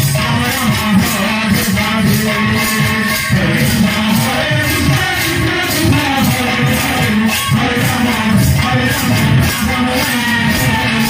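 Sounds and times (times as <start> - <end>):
drums: 0.0 - 11.0
jingling percussion: 0.0 - 11.0
man singing into a microphone: 0.0 - 11.0.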